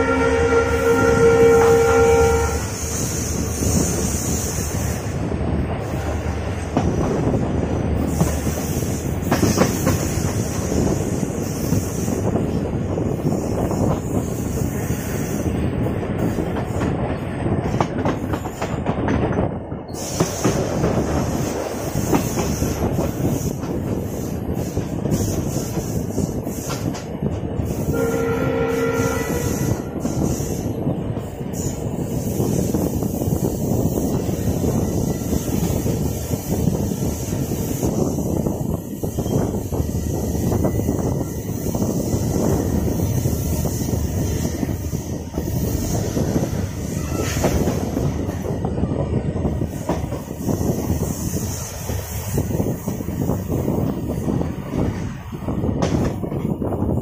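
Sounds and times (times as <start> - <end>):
locomotive horn: 0.0 - 3.0, 27.9 - 30.0
train wheels rumbling on rails: 0.0 - 57.0
wind rush: 0.0 - 57.0.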